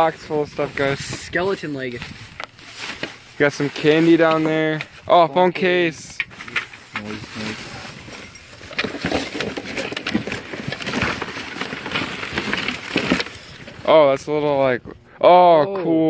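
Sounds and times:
plastic bags and paper rustling: 0.0s - 14.9s.

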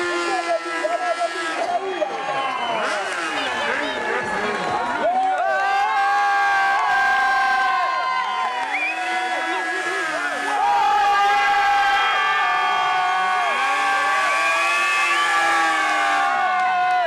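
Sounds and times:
motorcycle engines revving high: 0.0s - 5.0s, 6.4s - 16.7s
crowd noise: 0.0s - 17.0s.

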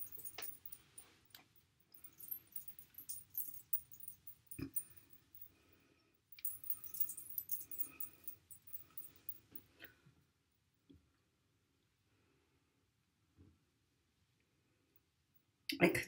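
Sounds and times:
hair rustling while braided: 0.0s - 4.9s.

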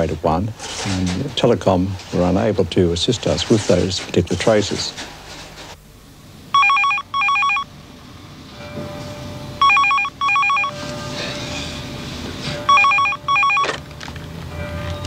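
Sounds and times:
desk telephone ringing: 6.5s - 7.7s, 9.6s - 10.9s, 12.7s - 13.8s.

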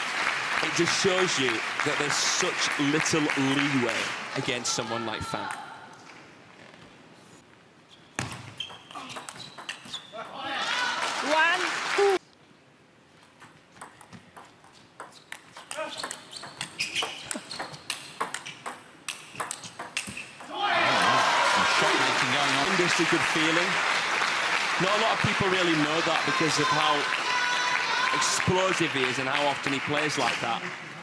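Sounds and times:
crowd cheering and applause: 0.0s - 5.0s, 10.5s - 12.2s, 20.5s - 31.0s
crowd shouting: 20.5s - 22.3s, 25.8s - 28.4s.

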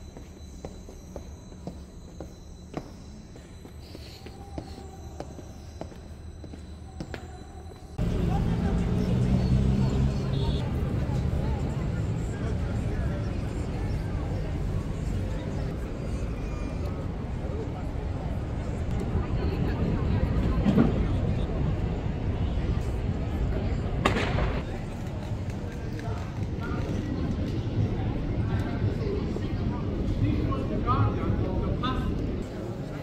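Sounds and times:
passers-by talking: 6.8s - 33.0s.

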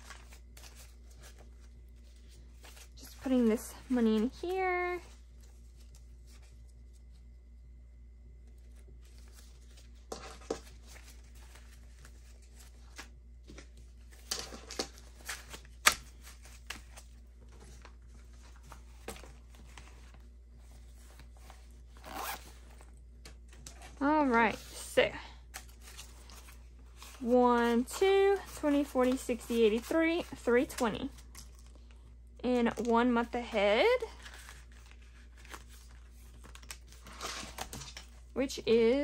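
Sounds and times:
banknotes rustling and flicking: 8.4s - 39.0s.

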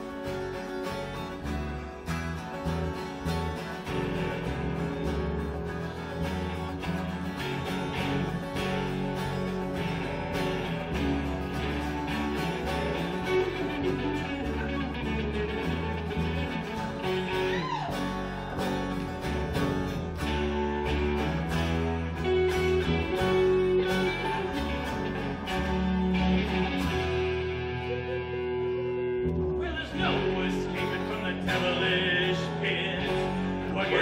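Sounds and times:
bass guitar: 0.0s - 34.0s
electric guitar: 0.0s - 34.0s
strummed acoustic guitar: 0.0s - 34.0s.

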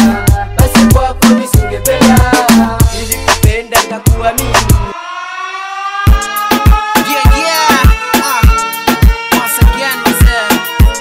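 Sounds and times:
electronic dance music: 0.0s - 11.0s
kick drum beat: 0.2s - 4.9s, 6.1s - 11.0s
rising held tone: 3.9s - 11.0s.

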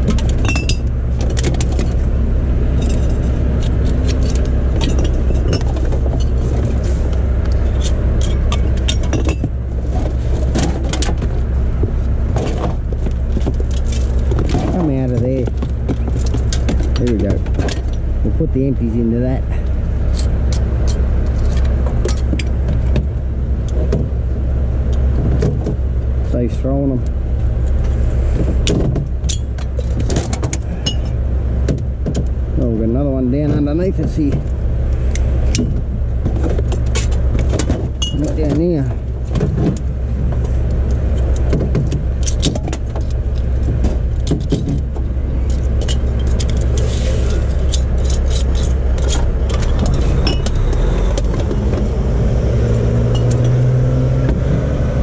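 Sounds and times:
vehicle engine idling: 0.0s - 55.0s
bottles and cans clinking: 38.0s - 38.4s.

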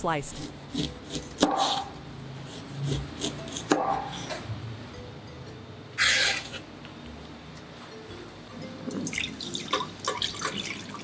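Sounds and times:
cleaver slicing ginger: 0.3s - 4.4s
blade scraping across board: 6.0s - 6.6s.

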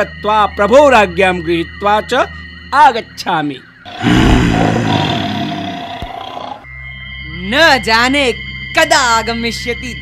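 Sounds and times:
lion roaring: 3.9s - 6.7s.

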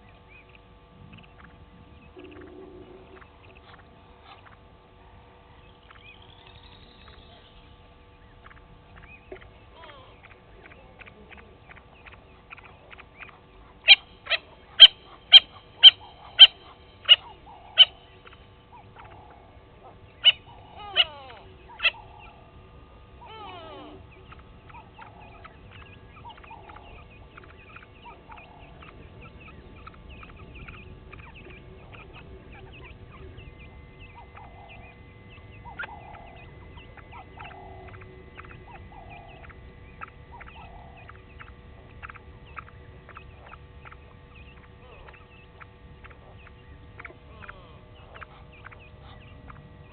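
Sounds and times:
spurfowl calling: 0.0s - 49.9s.

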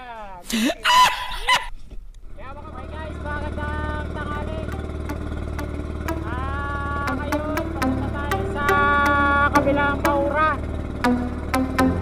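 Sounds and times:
boat engine droning: 2.2s - 12.0s
voice gliding up and holding notes: 3.5s - 12.0s.

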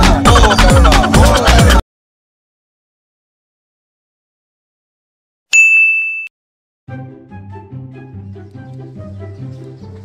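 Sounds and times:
music: 0.0s - 1.8s, 6.9s - 10.0s
bright ding: 5.5s - 6.3s.

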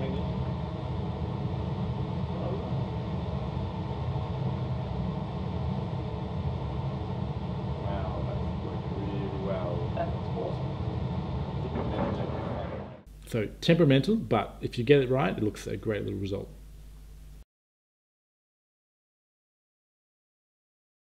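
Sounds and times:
extraction fan rumble: 0.0s - 17.4s.

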